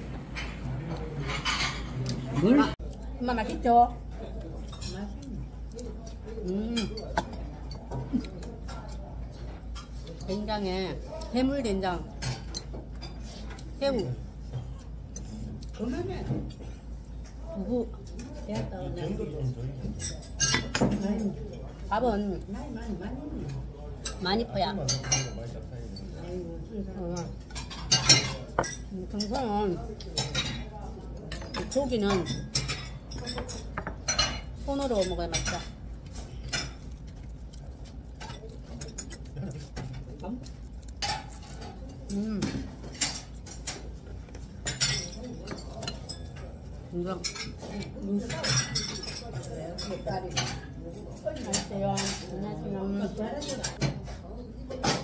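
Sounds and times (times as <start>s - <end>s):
metal chopsticks clinking on bowls: 19.9s - 21.3s, 24.8s - 26.2s, 27.2s - 52.3s.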